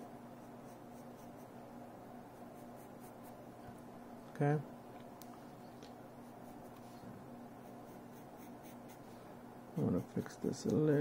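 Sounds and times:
low room hum: 0:00.0 - 0:11.0
pencil scratching on paper: 0:00.4 - 0:01.5, 0:02.4 - 0:03.4, 0:07.6 - 0:09.2, 0:09.8 - 0:10.8.

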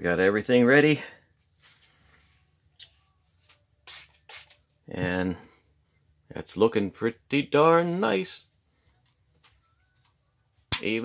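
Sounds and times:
faint soft rubbing: 0:01.4 - 0:03.6
spray bottle squirts: 0:03.8 - 0:04.6.

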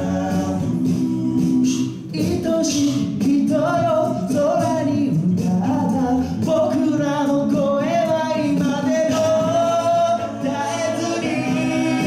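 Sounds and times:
male backing harmonies: 0:00.0 - 0:12.0
man singing lead melody: 0:00.0 - 0:12.0.

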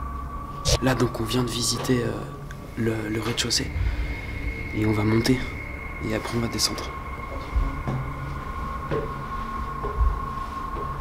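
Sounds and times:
high-pitched electronic whine: 0:00.0 - 0:11.0
footsteps on wooden stairs: 0:07.2 - 0:11.0.

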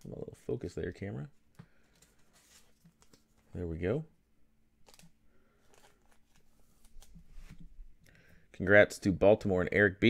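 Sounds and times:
light rustles of card handling: 0:01.3 - 0:03.7, 0:04.8 - 0:08.0.

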